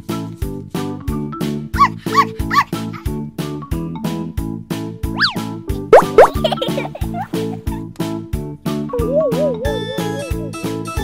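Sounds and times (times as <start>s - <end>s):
upbeat children's music: 0.0s - 11.0s
cartoon chirps: 5.2s - 5.4s, 6.0s - 6.6s
swooping pitch glides: 6.0s - 6.6s.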